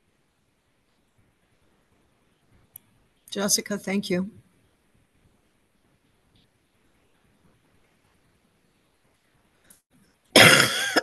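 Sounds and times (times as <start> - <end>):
loud harsh cough: 10.4 - 11.0.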